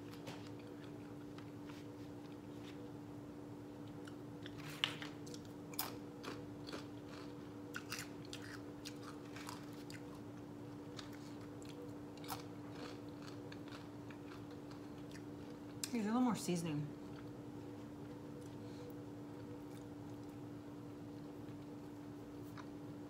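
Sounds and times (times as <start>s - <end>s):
person chewing crunchy food: 0.0s - 2.8s, 3.8s - 15.9s, 17.0s - 23.0s
steady low hum: 0.0s - 23.0s.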